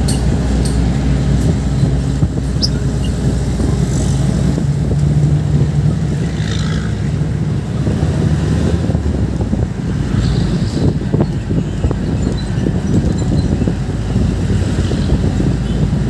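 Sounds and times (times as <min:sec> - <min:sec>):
diesel engine droning: 0:00.0 - 0:16.0
road and wind noise: 0:00.0 - 0:16.0.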